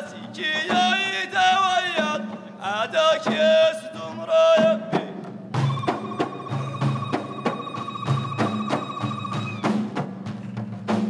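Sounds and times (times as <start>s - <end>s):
frame drums beaten in rhythm: 0.0s - 11.0s
high wavering vocal call: 5.6s - 9.9s.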